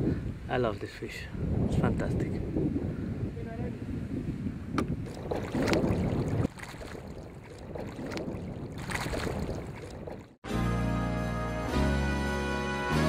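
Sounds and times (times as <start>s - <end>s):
wind on microphone: 0.0s - 10.4s
water lapping and splashing: 4.8s - 10.4s.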